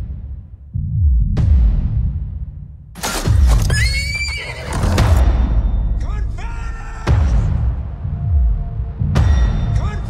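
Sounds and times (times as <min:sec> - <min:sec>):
horse neighing: 0:03.6 - 0:05.2.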